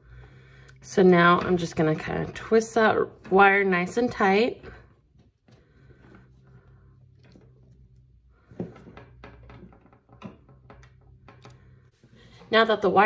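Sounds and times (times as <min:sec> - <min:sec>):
wire clicking and rustling: 0:00.6 - 0:12.0.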